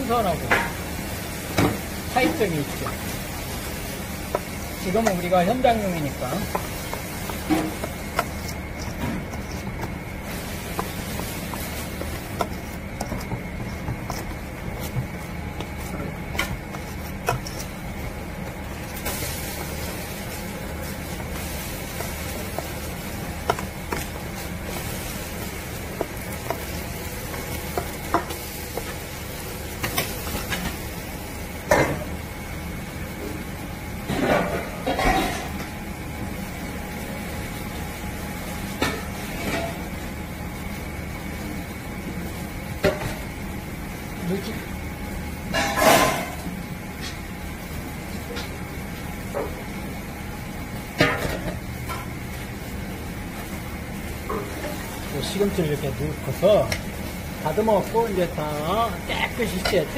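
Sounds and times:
metal spoon stirring paste in bowl: 0:04.3 - 0:18.6
spoon scraping bowl: 0:06.5 - 0:15.9, 0:16.7 - 0:17.8.

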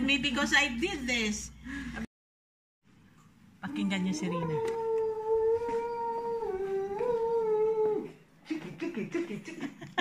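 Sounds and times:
person howling vocal call: 0:03.6 - 0:08.1.

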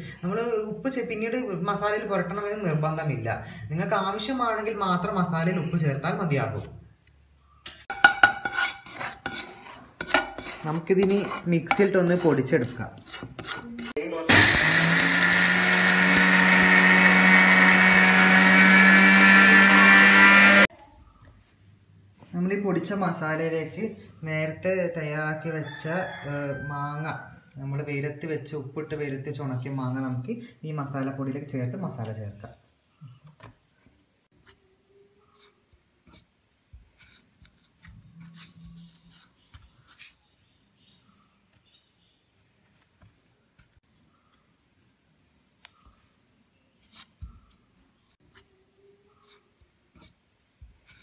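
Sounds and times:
spatula scraping a pan: 0:07.7 - 0:14.0, 0:35.2 - 0:40.2.

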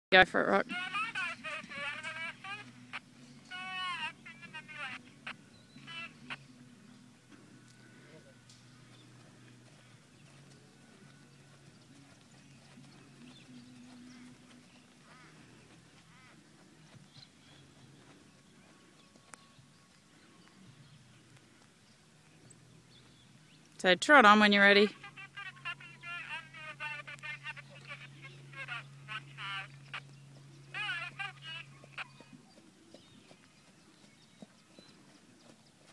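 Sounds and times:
low steady hum: 0:00.1 - 0:35.9.

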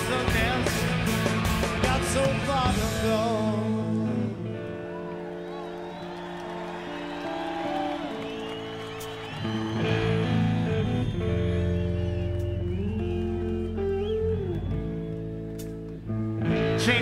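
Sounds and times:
electric guitars sustaining chords: 0:00.0 - 0:17.0
live rock band: 0:00.0 - 0:17.0.

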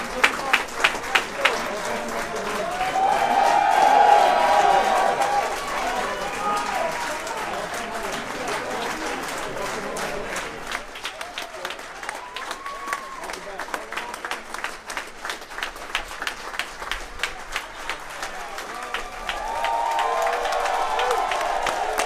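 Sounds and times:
crowd applauding: 0:00.0 - 0:22.0.

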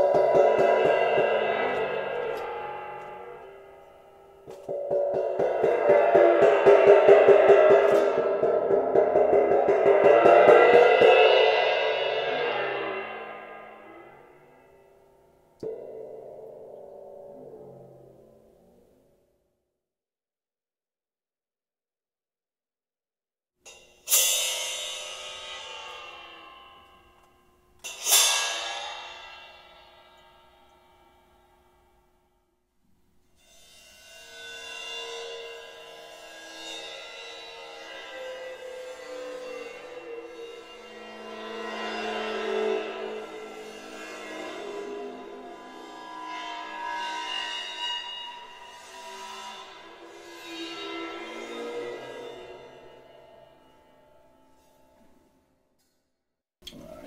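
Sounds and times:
cymbal struck and ringing: 0:00.0 - 0:17.6, 0:23.7 - 0:31.6, 0:33.4 - 0:54.7.

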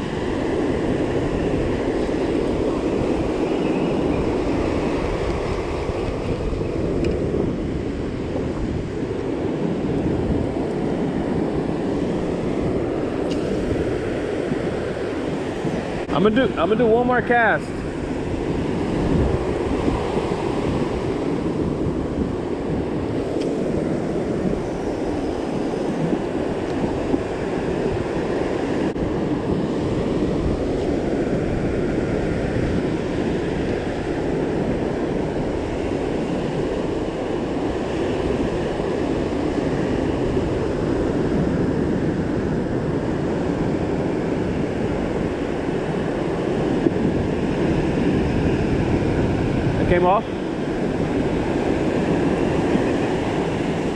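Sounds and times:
ocean surf breaking: 0:00.0 - 0:53.9
wind buffeting microphone: 0:00.0 - 0:53.9.

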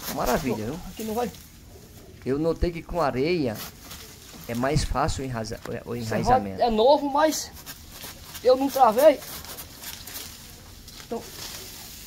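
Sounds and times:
hand saw rasping through branch: 0:00.0 - 0:01.2, 0:07.5 - 0:10.3.

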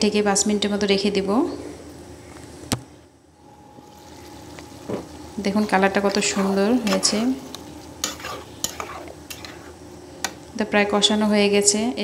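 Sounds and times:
food sizzling: 0:03.4 - 0:10.5
spatula scraping a wok: 0:05.6 - 0:10.4.

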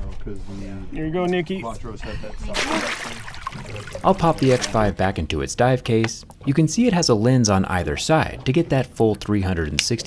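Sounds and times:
sea water splashing: 0:02.6 - 0:05.0.

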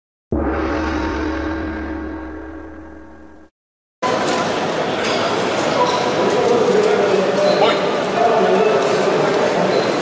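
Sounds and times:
deep metallic gong strike: 0:00.3 - 0:03.5.

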